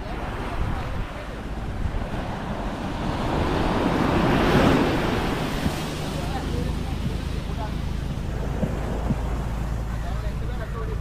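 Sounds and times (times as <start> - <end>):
wind on microphone: 0.0 - 10.5
surf washing onto sand: 0.0 - 11.0.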